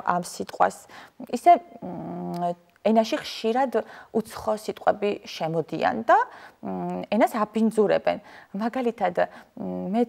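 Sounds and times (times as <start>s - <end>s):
woman's voice: 0.0s - 10.0s.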